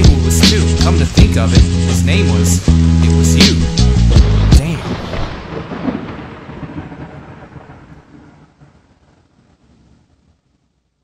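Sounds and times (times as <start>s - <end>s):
thunder-like rumble: 4.0s - 10.8s.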